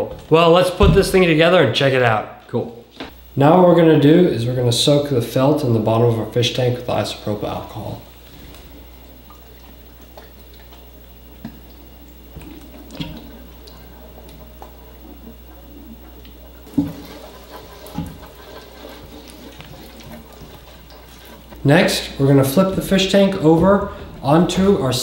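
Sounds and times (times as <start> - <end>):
liquid trickling: 6.3 - 25.0.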